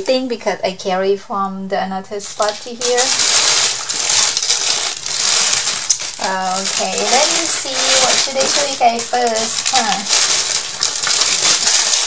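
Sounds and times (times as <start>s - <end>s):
packaging rustling and clattering: 2.4s - 12.0s.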